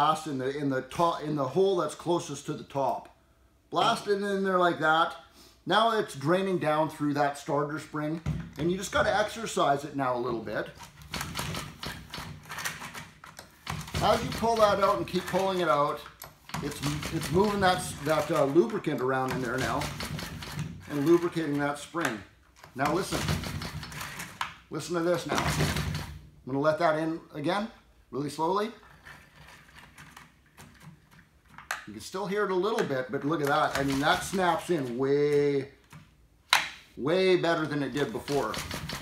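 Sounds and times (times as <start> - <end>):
recoil starter rope pulled: 13.6 - 21.6.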